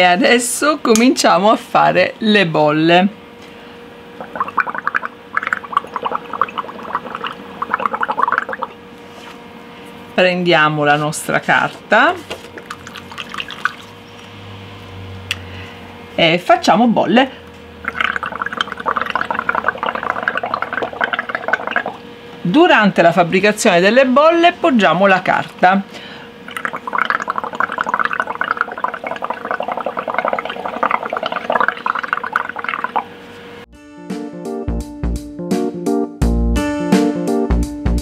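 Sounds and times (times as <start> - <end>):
blowing bubbles through a straw: 4.2 - 8.8, 12.6 - 14.0, 17.8 - 22.0, 26.5 - 33.1.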